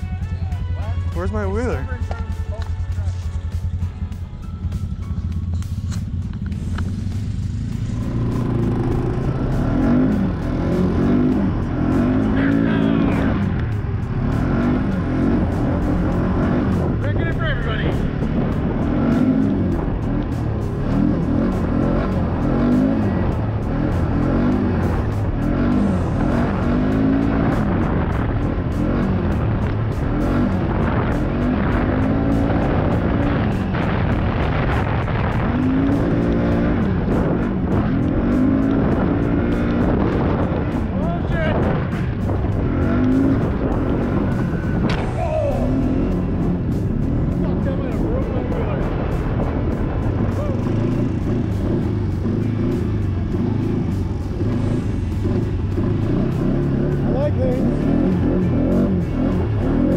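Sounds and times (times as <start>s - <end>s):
atv engine revving: 0.0s - 59.9s.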